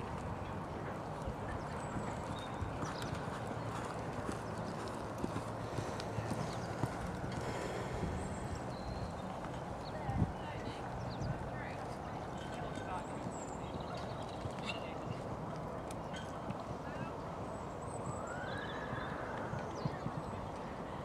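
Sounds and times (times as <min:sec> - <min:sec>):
hoofbeats on sand: 0:01.1 - 0:17.1.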